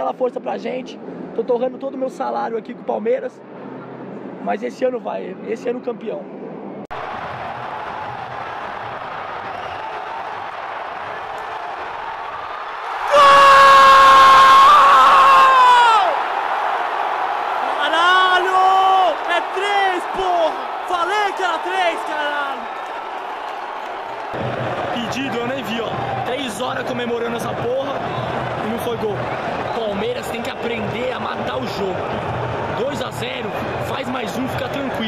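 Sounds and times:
crowd cheering loudly: 6.9 - 35.0
long held shout: 12.8 - 16.4, 17.5 - 22.8.

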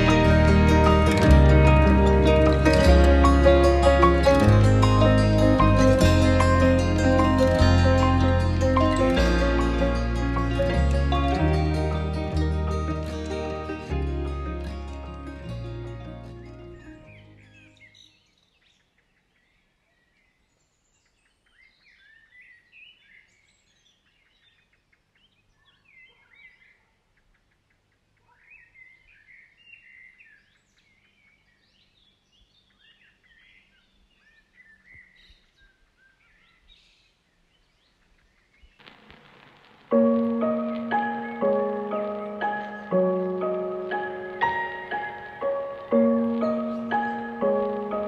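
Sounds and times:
music: 0.0 - 17.8, 39.8 - 48.0
faint bird chirping: 16.3 - 48.0.

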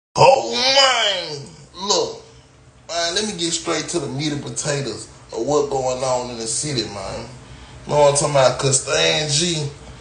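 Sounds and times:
man wailing: 0.2 - 1.6.

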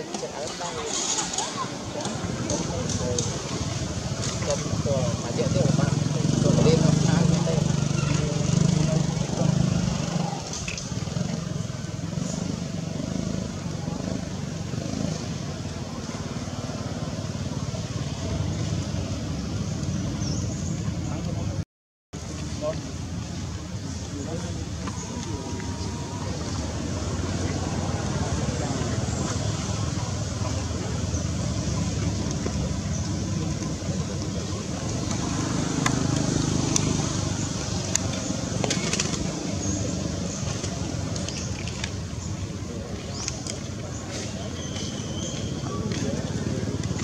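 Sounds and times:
outdoor background noise: 0.0 - 21.6, 22.2 - 47.0.

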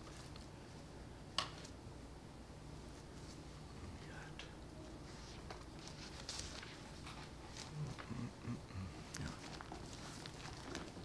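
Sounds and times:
papers rustling: 5.4 - 8.1, 9.1 - 11.0.

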